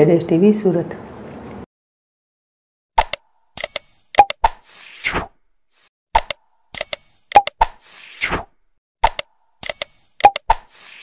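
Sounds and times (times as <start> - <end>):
sharp mouse clicks: 3.0 - 4.6, 6.2 - 8.0, 9.0 - 11.0
pops: 5.8 - 11.0.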